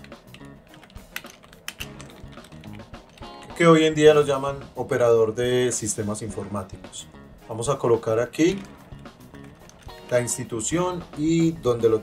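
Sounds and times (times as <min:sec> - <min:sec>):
keyboard key clicks: 0:00.0 - 0:03.6, 0:09.4 - 0:10.2.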